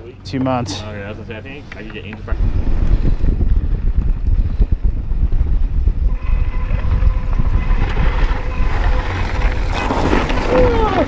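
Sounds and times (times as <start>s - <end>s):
wind buffeting microphone: 0.0s - 11.0s
bike tyre rumble on dirt: 0.4s - 11.0s.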